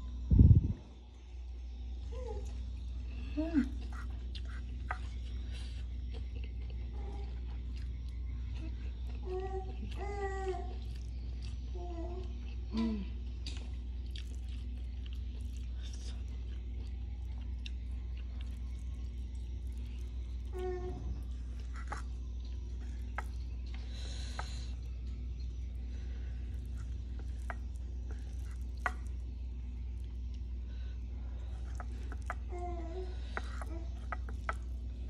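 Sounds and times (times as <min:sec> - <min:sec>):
low hum: 0:00.0 - 0:35.0
soft chewing: 0:02.4 - 0:35.0.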